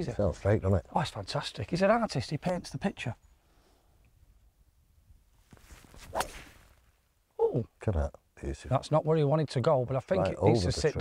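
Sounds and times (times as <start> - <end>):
golf club swish: 5.5 - 6.9.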